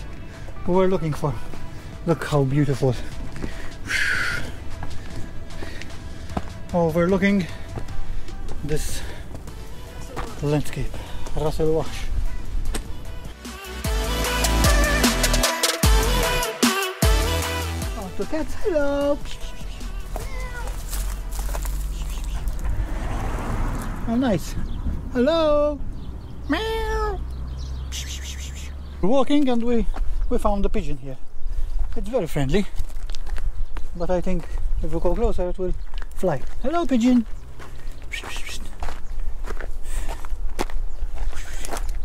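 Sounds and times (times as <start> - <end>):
footsteps outdoors: 0.0 - 13.5, 17.0 - 42.0
cat meowing: 20.2 - 20.8
wind rumble on microphone: 22.6 - 26.4.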